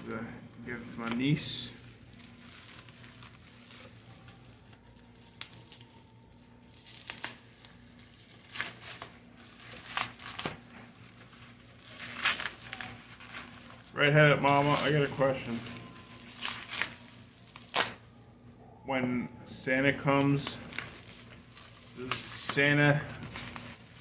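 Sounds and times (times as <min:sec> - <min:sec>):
plastic packing crinkling and tearing: 0:00.0 - 0:18.4, 0:19.9 - 0:24.0.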